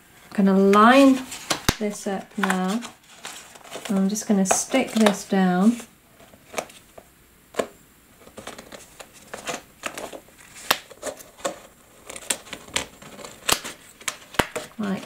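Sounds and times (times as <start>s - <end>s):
plastic sheet crinkling and clicking: 0.6s - 15.0s.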